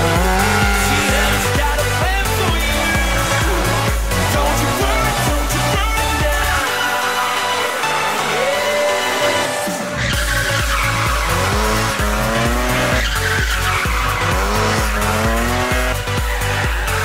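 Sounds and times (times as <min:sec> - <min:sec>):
music with heavy steady beat: 0:00.0 - 0:17.0
rally car engine revving: 0:00.0 - 0:17.0
tyres skidding: 0:00.0 - 0:17.0.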